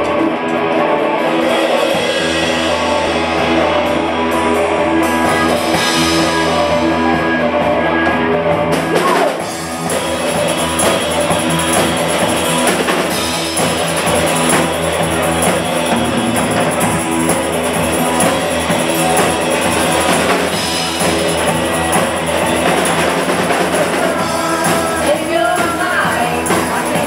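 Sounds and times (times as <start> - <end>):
drum kit: 0.0 - 27.0
electric guitars: 0.0 - 27.0.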